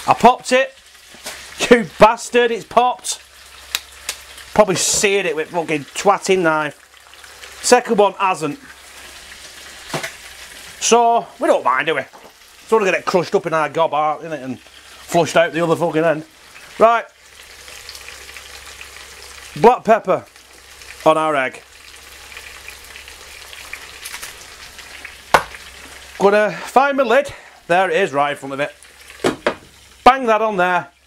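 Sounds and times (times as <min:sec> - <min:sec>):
food sizzling in a pan: 0:00.0 - 0:31.0
sharp fat pops: 0:25.3 - 0:25.6.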